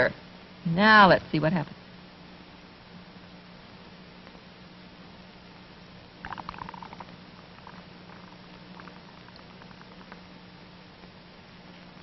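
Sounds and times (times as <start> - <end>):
steady hiss and hum: 0.0 - 12.0
bubble pipe bubbling: 6.2 - 10.2.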